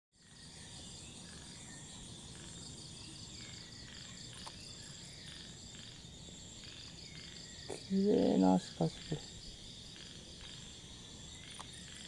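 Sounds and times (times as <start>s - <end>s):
crickets chirring: 0.2s - 12.0s.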